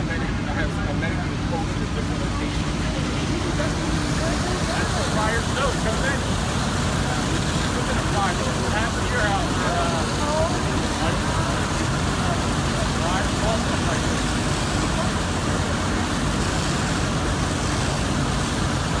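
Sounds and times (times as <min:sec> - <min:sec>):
fire engines rumbling: 0:00.0 - 0:19.0.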